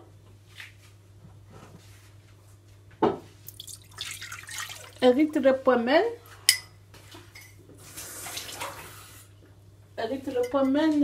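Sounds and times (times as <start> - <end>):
water rushing in glass bowl: 3.5 - 5.1.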